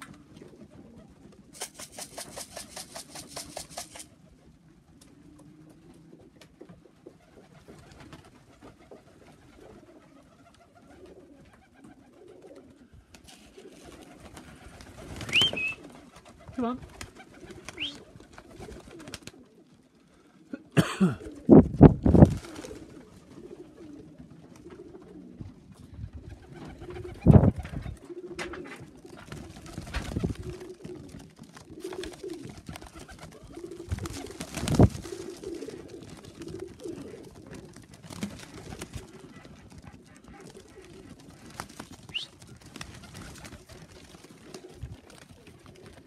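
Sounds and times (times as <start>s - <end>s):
wings flapping: 0.0s - 4.3s, 6.6s - 19.5s, 21.2s - 25.2s, 26.1s - 46.0s
pigeons cooing: 0.0s - 21.7s, 22.3s - 46.0s
short rising whistle: 15.3s - 15.8s.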